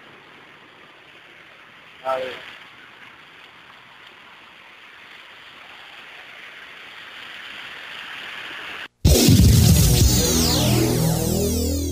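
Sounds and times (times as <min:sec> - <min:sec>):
floodwater rushing: 0:00.0 - 0:08.9
electronic music with synthesizers: 0:09.0 - 0:11.9.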